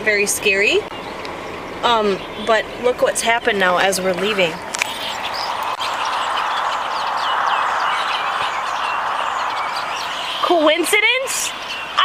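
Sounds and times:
small birds chirping: 0:00.0 - 0:12.0
steady rushing noise: 0:04.6 - 0:11.7.

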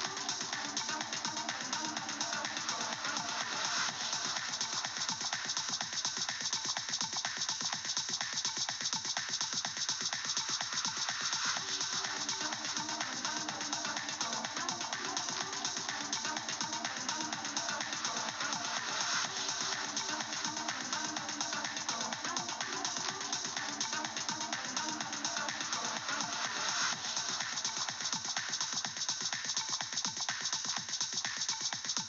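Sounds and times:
electronic house music with driving beat: 0:00.0 - 0:32.0.

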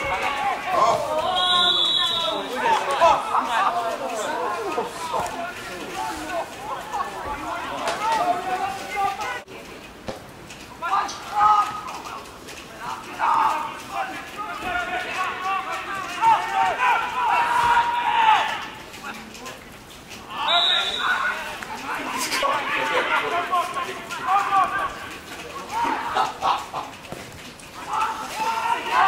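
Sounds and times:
people calling and shouting: 0:00.0 - 0:29.0.

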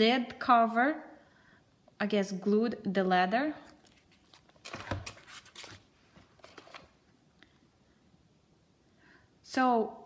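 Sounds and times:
notebook cover rustling and tapping: 0:03.8 - 0:07.0.

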